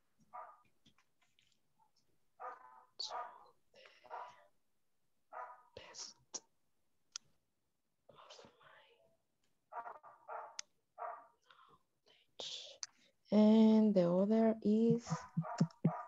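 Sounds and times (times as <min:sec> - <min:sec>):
person whispering: 0:05.8 - 0:06.4, 0:08.1 - 0:09.0, 0:12.1 - 0:12.9, 0:14.7 - 0:16.0.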